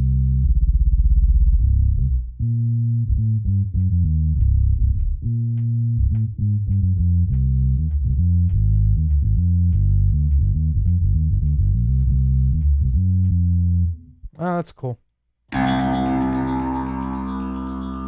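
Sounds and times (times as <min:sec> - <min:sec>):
electric bass notes: 0:00.0 - 0:14.3, 0:15.5 - 0:18.0.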